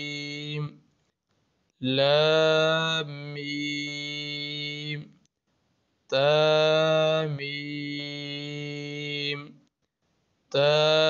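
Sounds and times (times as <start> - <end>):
man reciting in chant: 0.0 - 0.8, 1.8 - 5.2, 6.1 - 9.6, 10.5 - 11.0.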